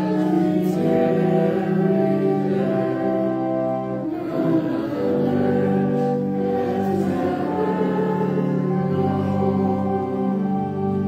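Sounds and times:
voices singing a hymn: 0.0s - 11.0s.

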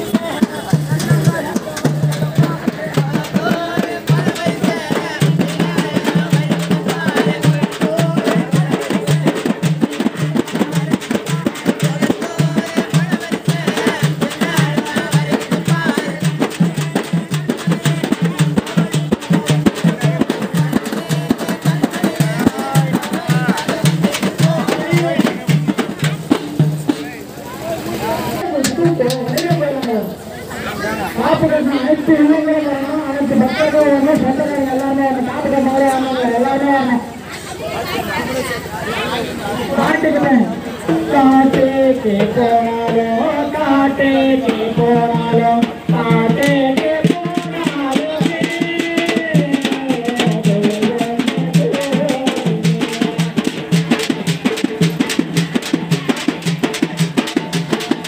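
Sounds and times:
drum band playing folk rhythm: 0.0s - 58.0s
woman singing into microphone: 40.9s - 52.5s.

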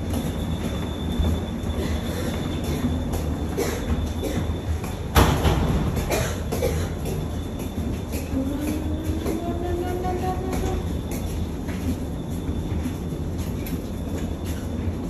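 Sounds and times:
suitcase wheels rolling: 0.0s - 15.0s.

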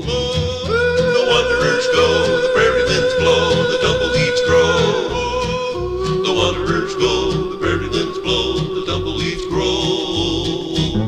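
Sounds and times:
man singing long vibrato note: 0.0s - 11.0s.

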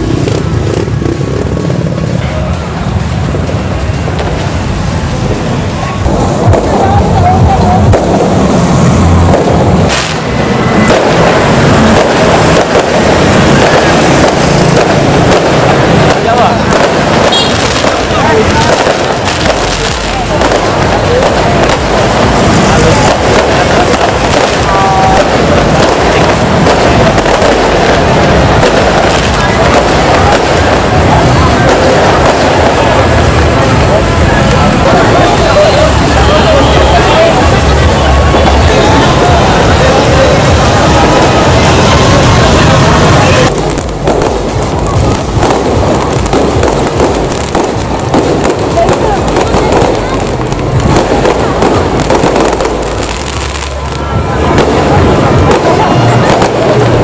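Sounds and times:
fireworks crackling bursts: 0.0s - 57.0s
firework bang: 3.2s - 57.0s.

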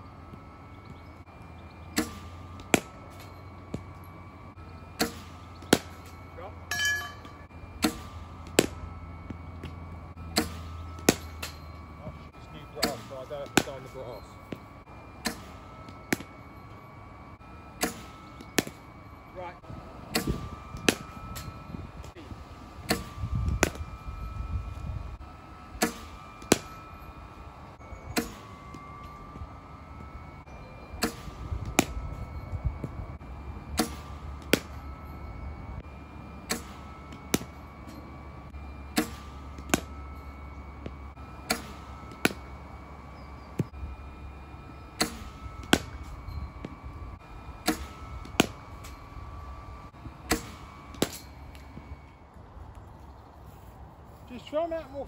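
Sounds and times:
faint steady whine: 0.0s - 55.0s
bat striking ball: 1.9s - 4.2s, 4.9s - 12.0s, 12.7s - 19.0s, 20.0s - 22.1s, 22.8s - 24.6s, 25.7s - 27.2s, 27.8s - 29.4s, 30.8s - 32.5s, 33.6s - 35.4s, 36.3s - 52.0s.

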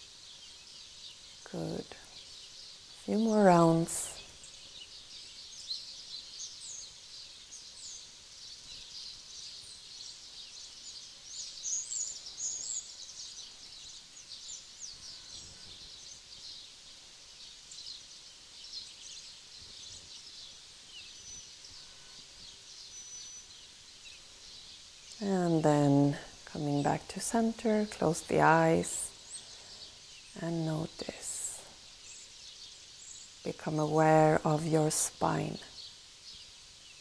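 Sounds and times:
small birds chirping: 0.0s - 37.0s.

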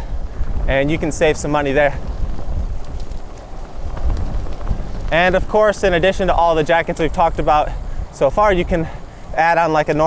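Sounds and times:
bicycle tyres on rough path: 0.0s - 10.0s
wind buffeting microphone: 0.0s - 10.0s.

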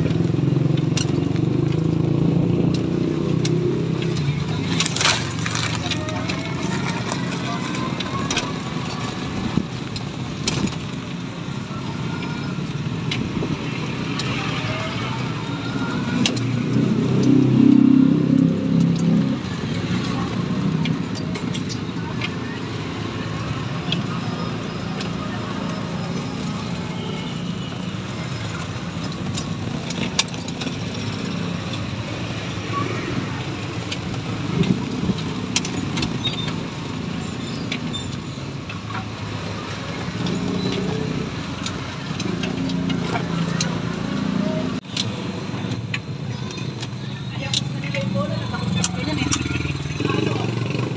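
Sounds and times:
tyre and road noise: 0.0s - 50.9s
vehicle engine: 0.0s - 50.9s.

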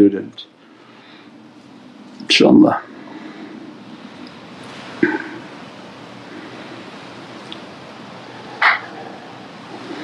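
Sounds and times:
quiet room hiss: 0.0s - 10.0s.

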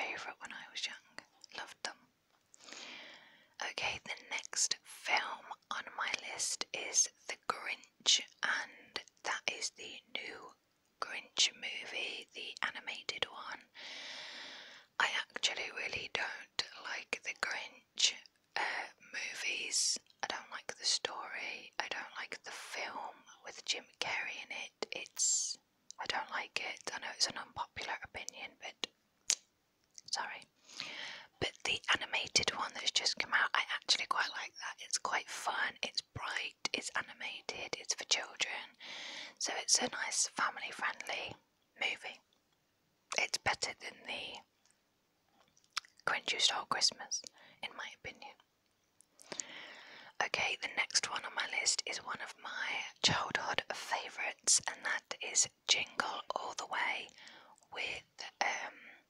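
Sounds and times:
woman whispering: 0.0s - 2.0s, 3.6s - 13.8s, 15.0s - 28.9s, 30.0s - 42.2s, 43.1s - 44.5s, 45.8s - 48.4s, 49.3s - 59.0s.

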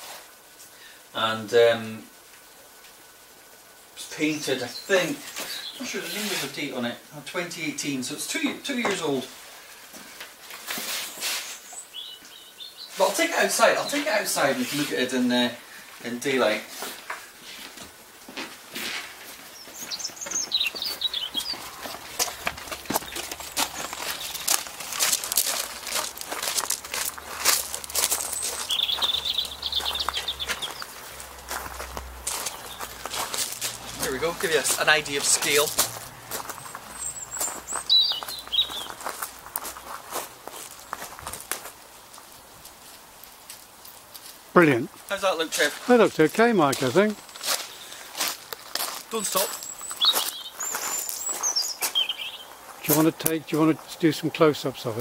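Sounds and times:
small bird chirping: 11.4s - 13.0s, 19.5s - 25.1s, 27.1s - 31.3s, 32.4s - 33.1s, 36.4s - 39.1s, 49.1s - 52.7s
soft rustling: 15.8s - 53.2s
footsteps on ground: 16.3s - 55.0s.

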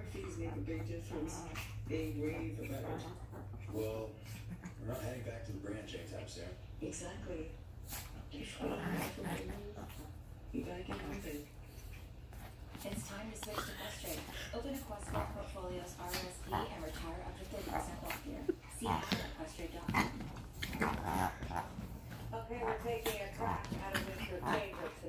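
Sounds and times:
small dogs play-fighting: 0.0s - 25.0s.

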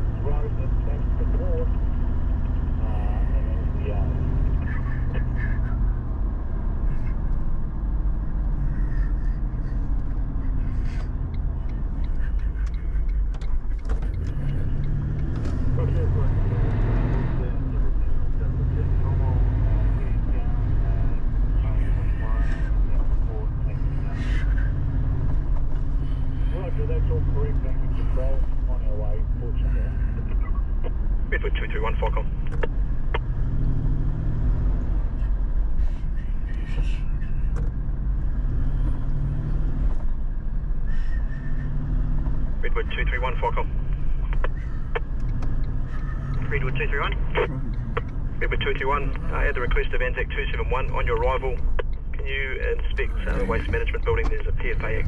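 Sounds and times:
radio voices: 0.0s - 33.4s, 34.8s - 37.6s, 42.4s - 55.0s
vehicle engine and road rumble: 0.0s - 55.0s.

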